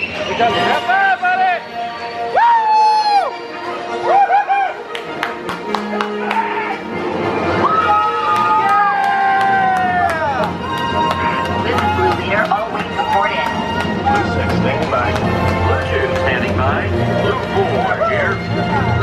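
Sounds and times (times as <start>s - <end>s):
roller coaster soundtrack music: 0.0s - 19.0s.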